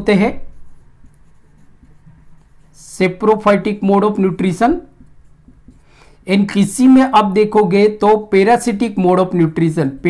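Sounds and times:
marker writing on whiteboard: 0:00.0 - 0:07.0.

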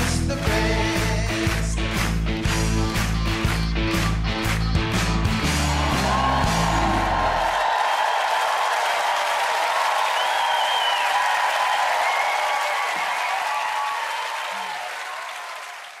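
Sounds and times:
dance music: 0:00.0 - 0:07.8
audience applauding and cheering: 0:00.0 - 0:16.0
whistles and whoops: 0:05.8 - 0:08.7, 0:10.0 - 0:15.7.

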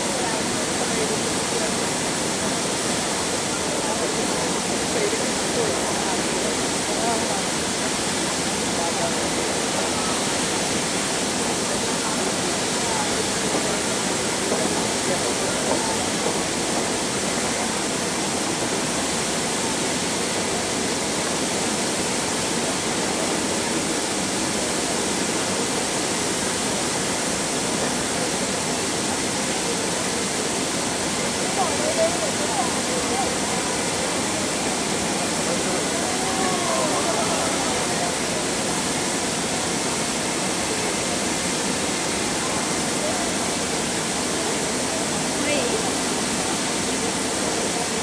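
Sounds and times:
faint voices talking: 0:00.0 - 0:48.0
fountain spray hissing: 0:00.0 - 0:48.0.

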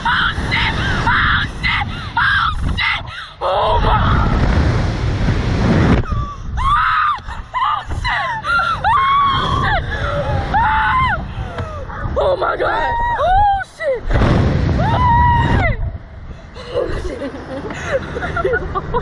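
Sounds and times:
wind rushing over microphone: 0:00.0 - 0:19.0
people screaming: 0:06.1 - 0:14.0, 0:14.7 - 0:15.9.

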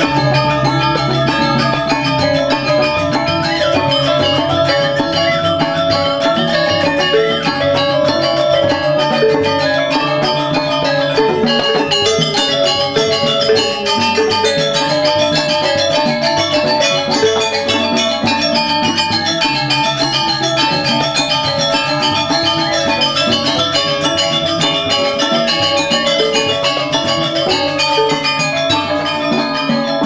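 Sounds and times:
metallophones and kettle gongs ringing: 0:00.0 - 0:30.0.

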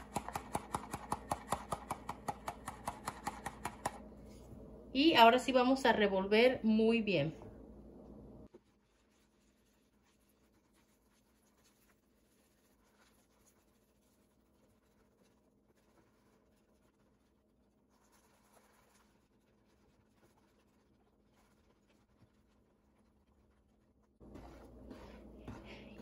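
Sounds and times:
whisk scratching in plastic bowl: 0:08.5 - 0:26.0.

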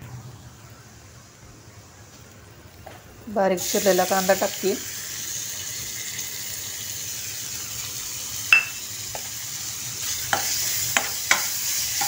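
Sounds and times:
onions sizzling in hot oil: 0:02.8 - 0:12.0
metal spoon clinking on pan: 0:08.5 - 0:08.8
spoon stirring and knocking pan: 0:08.6 - 0:09.4, 0:10.2 - 0:12.0.

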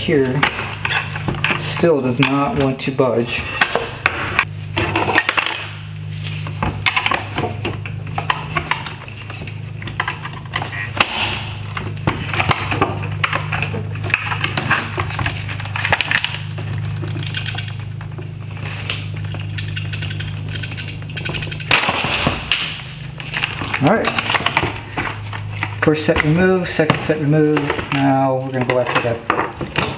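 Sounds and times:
steady low hum: 0:00.0 - 0:29.9.

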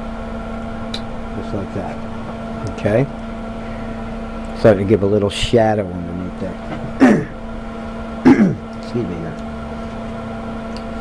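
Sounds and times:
man coughing: 0:06.8 - 0:07.4, 0:08.2 - 0:08.7.

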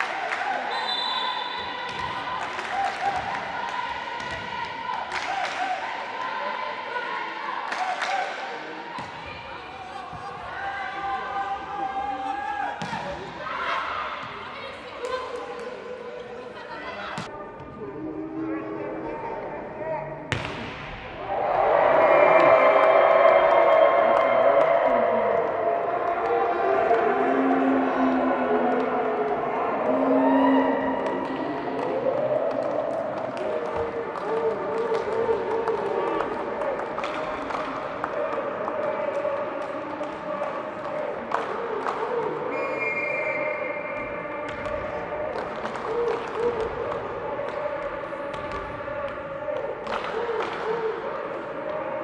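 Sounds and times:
voices in a large hall: 0:00.0 - 0:52.0
high whistle: 0:00.7 - 0:01.8, 0:42.5 - 0:44.1
volleyball bouncing on court: 0:01.4 - 0:05.2, 0:12.8 - 0:13.5, 0:20.3 - 0:21.0, 0:44.0 - 0:45.7, 0:46.5 - 0:49.2.

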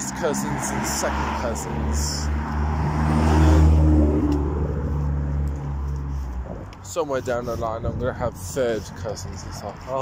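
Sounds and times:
vehicle engine hum passing: 0:00.0 - 0:10.0.

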